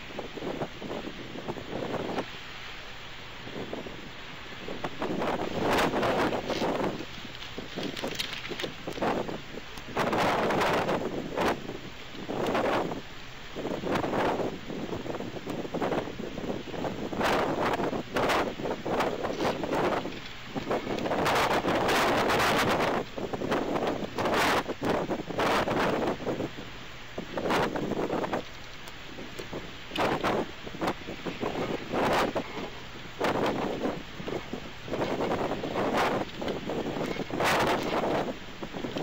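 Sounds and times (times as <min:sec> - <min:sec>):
wind buffeting microphone: 0:00.0 - 0:39.0.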